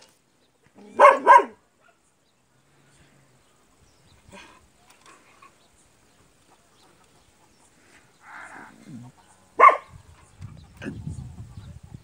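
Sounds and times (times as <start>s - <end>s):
dog barking: 0.9s - 2.0s, 9.6s - 10.0s.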